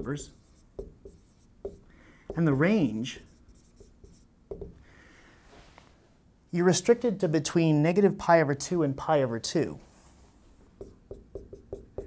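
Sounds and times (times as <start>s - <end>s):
marker writing on a whiteboard: 0.0s - 4.8s, 9.9s - 12.0s.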